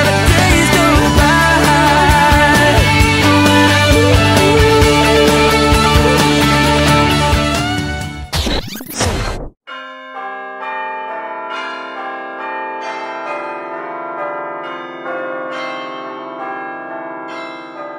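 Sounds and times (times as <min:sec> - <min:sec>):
song playing: 0:00.0 - 0:08.3
church bells ringing a peal: 0:09.7 - 0:17.9.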